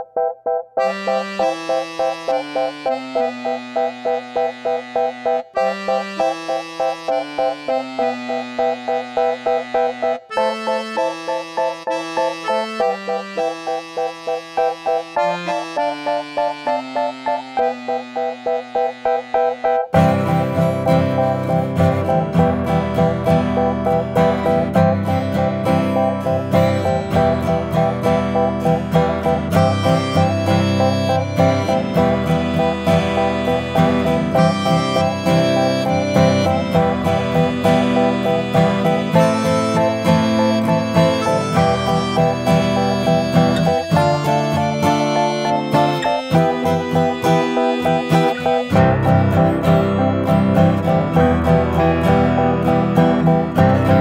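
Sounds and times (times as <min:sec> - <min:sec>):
acoustic guitar pop music: 0:00.8 - 0:54.0.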